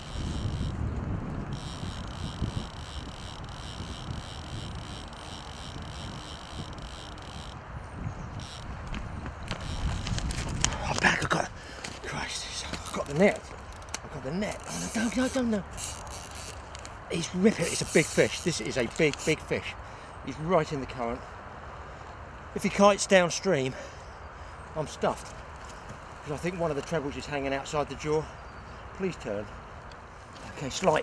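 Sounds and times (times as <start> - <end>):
wind rumbling on microphone: 0.0 - 19.5
rustling: 8.4 - 11.1.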